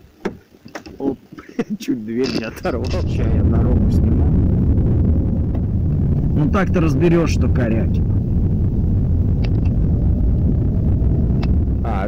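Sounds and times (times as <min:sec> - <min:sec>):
car driving interior rumble: 0:02.4 - 0:12.0.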